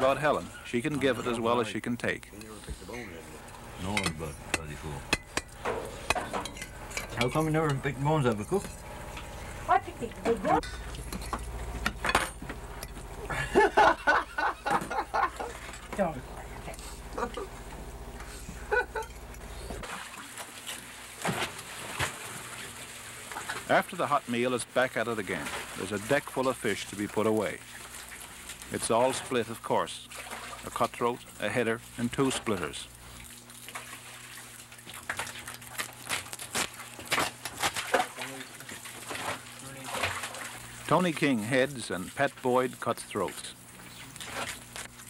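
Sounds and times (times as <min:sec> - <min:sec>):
steady low hum: 0:00.0 - 0:19.9
water splashing and trickling: 0:13.6 - 0:16.3, 0:19.8 - 0:45.0
fish slapping on wet wooden table: 0:34.8 - 0:40.5.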